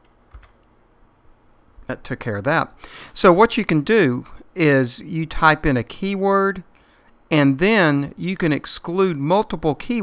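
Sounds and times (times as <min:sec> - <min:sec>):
computer keyboard key clicks: 0:00.3 - 0:00.6.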